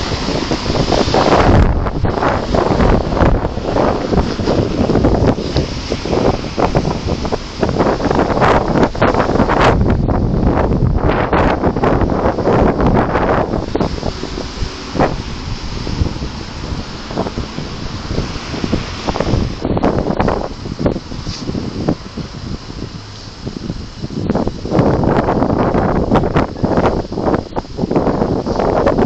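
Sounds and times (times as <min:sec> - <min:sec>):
wind gusts on microphone: 0:00.0 - 0:29.0.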